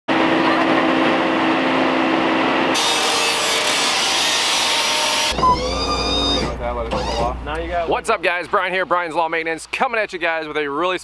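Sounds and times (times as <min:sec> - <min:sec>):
leaf blower running: 0:00.1 - 0:06.4
pitched wavering sound: 0:05.3 - 0:07.4.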